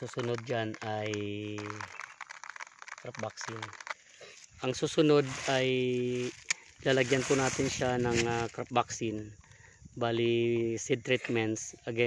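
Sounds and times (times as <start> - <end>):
seeds trickling onto bubble wrap: 0.0 - 9.4.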